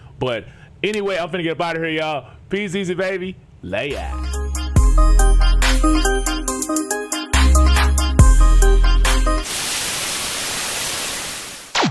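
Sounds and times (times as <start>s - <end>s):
bass-heavy electronic music: 3.9s - 9.4s
static noise hiss: 9.4s - 11.9s.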